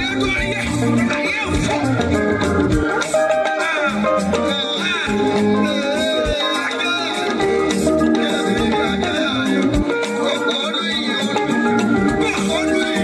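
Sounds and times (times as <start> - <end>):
drum kit: 0.0 - 13.0
hand drums: 0.0 - 13.0
keyboard: 0.0 - 13.0
person singing lead vocals: 0.0 - 13.0.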